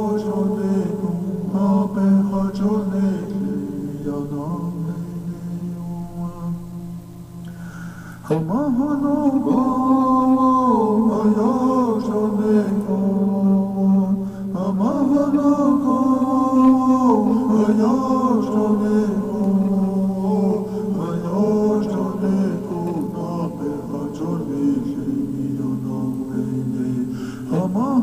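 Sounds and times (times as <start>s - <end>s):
low drone: 0.0s - 28.0s
voice chanting held notes: 8.2s - 28.0s.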